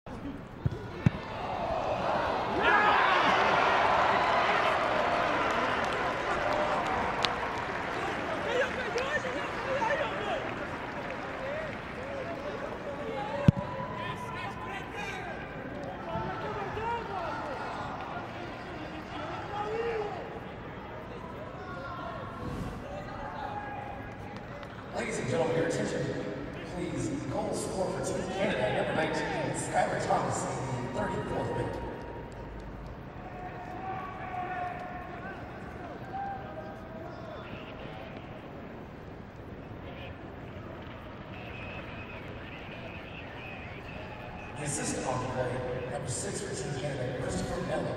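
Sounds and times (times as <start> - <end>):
voices on field: 0.2 - 32.4, 33.0 - 47.9.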